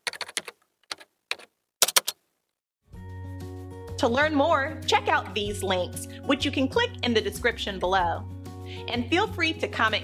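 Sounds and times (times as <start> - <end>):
computer keyboard typing: 0.0 - 2.2.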